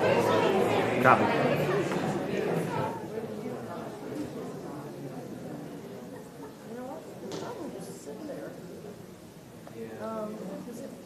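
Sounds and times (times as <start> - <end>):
murmur of audience conversations: 0.0 - 11.0.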